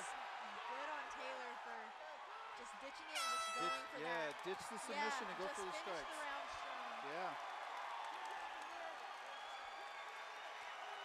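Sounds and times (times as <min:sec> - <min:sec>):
horn tone: 0:03.1 - 0:04.1.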